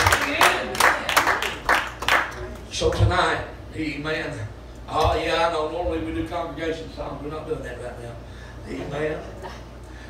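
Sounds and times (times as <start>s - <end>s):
people clapping: 0.0s - 3.0s.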